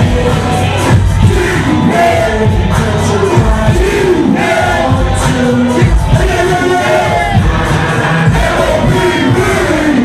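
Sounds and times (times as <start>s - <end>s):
loud hip-hop music: 0.0s - 10.0s
crowd shouting along: 0.2s - 10.0s.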